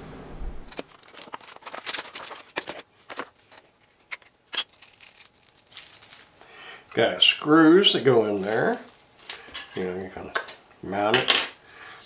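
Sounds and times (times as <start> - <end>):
plastic packaging crinkling: 0.7 - 6.5, 7.7 - 10.3.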